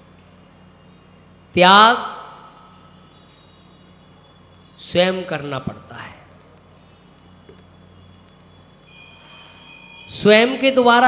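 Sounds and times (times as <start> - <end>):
low electrical hum: 0.0 - 11.0
high whistle-like tone: 2.8 - 4.8.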